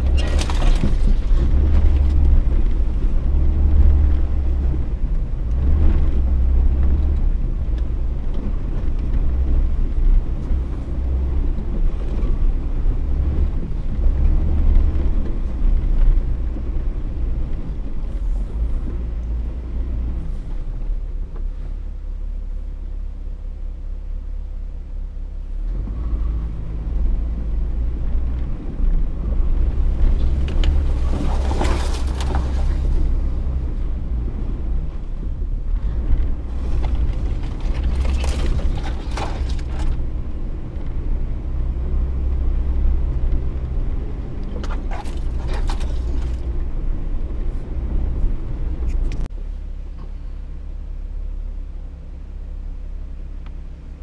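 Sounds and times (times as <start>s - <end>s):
off-road vehicle engine rumbling: 0.0s - 54.0s.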